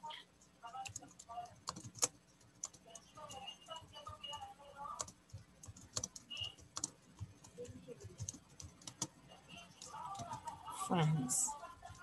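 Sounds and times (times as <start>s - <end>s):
computer keyboard typing: 0.4s - 10.8s, 11.5s - 12.0s.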